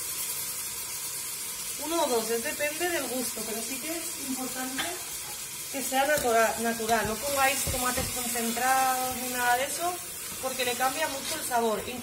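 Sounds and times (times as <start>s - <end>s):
meat and onion sizzling: 0.0s - 12.0s.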